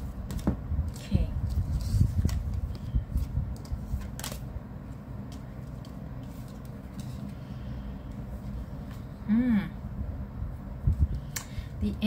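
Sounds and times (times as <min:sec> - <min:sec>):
steady low rumble: 0:00.0 - 0:12.0
cards tapping and sliding: 0:00.2 - 0:07.4.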